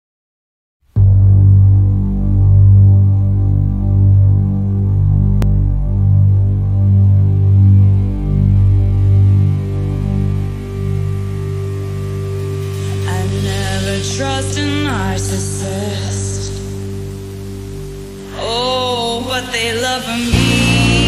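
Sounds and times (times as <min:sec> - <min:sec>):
low synth drone: 0:00.9 - 0:21.0.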